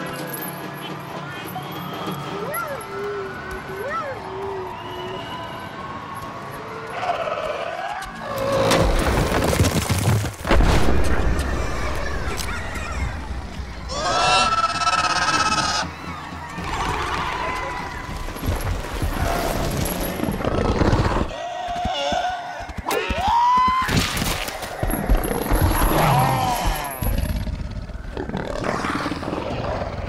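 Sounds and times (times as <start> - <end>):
shrill creature cries: 13.9 - 15.9.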